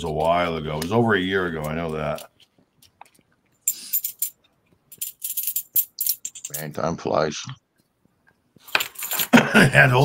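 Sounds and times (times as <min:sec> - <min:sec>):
small metal objects jingling: 0:03.7 - 0:06.7, 0:08.8 - 0:09.3.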